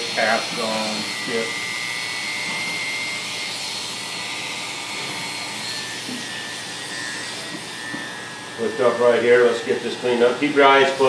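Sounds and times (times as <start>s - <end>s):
electric hair clipper running: 0.0s - 11.0s.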